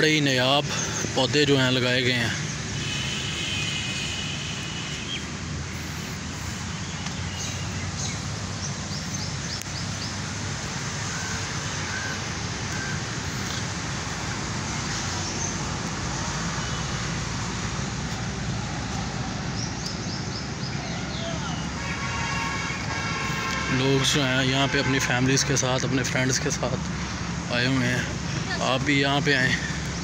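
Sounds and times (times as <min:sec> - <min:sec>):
broad noisy hiss: 0:00.0 - 0:19.7
outdoor background rumble: 0:00.0 - 0:23.7.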